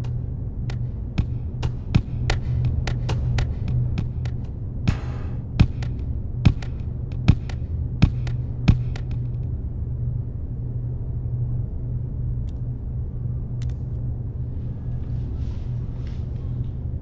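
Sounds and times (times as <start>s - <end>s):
steady low hum: 0.0s - 17.0s
ball bouncing down concrete stairs: 5.6s - 9.2s.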